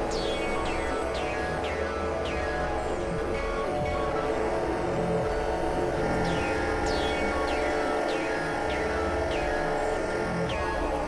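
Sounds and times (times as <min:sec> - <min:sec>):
experimental electronic drones: 0:00.0 - 0:11.0.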